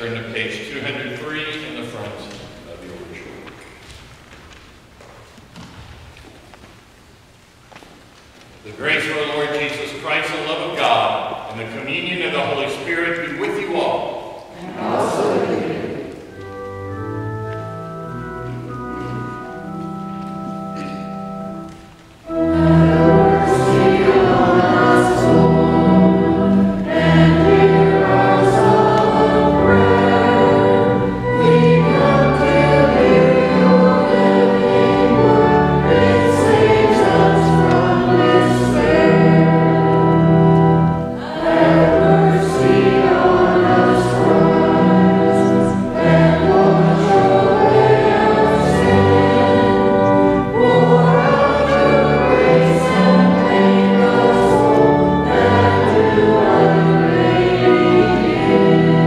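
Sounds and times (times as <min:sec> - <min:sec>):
many voices singing a hymn: 0:12.2 - 0:19.8, 0:22.2 - 0:59.0.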